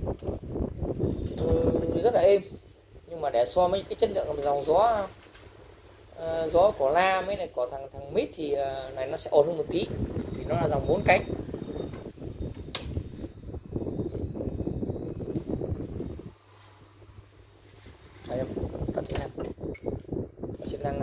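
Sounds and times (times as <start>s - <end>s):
fan airflow buffeting microphone: 0.0s - 21.0s
fan motor humming: 0.0s - 21.0s.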